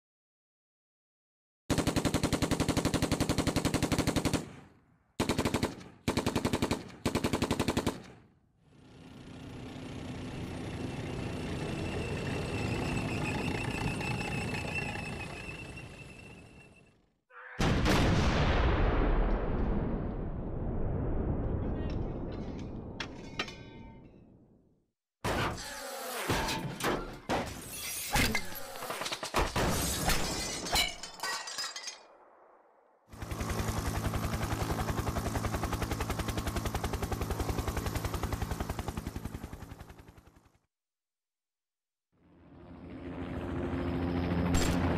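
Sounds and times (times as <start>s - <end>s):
rapid automatic gunfire: 1.7s - 8.2s
glass shattering: 29.1s - 32.1s.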